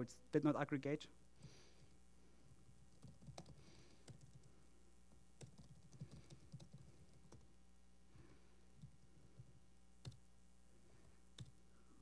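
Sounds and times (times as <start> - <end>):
steady low hum: 0.0 - 12.0
typing on laptop keyboard: 2.5 - 7.5, 8.8 - 10.3, 11.4 - 11.6.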